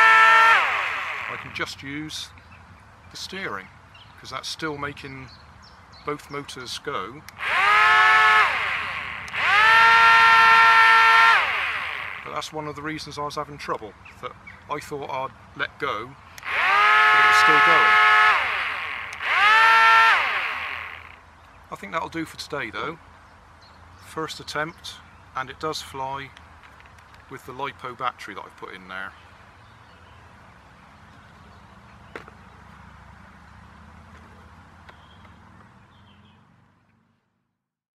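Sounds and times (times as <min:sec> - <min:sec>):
electric motors and propellers whining: 0:00.0 - 0:01.8, 0:07.3 - 0:12.6, 0:16.3 - 0:21.2.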